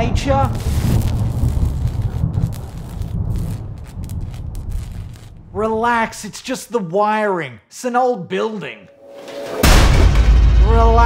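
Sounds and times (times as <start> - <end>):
deep heavy rumble: 0.0 - 6.1
crackling: 0.0 - 6.6.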